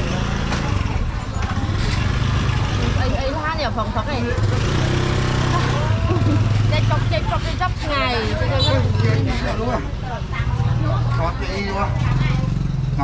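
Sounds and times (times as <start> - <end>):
people talking: 0.0 - 12.6.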